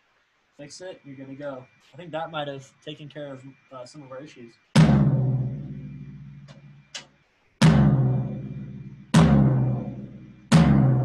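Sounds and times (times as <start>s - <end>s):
floor tom hits: 4.8s - 6.6s, 7.6s - 11.0s.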